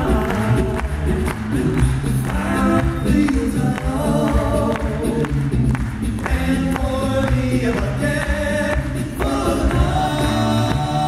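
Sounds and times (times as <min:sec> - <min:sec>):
men's group singing in harmony: 0:00.0 - 0:11.0
vocal percussion hits: 0:00.0 - 0:11.0.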